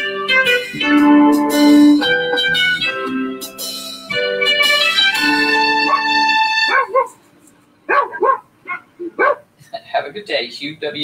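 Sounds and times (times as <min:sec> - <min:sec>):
guitar music: 0:00.0 - 0:07.2
dog barking: 0:05.9 - 0:07.2, 0:07.9 - 0:09.5.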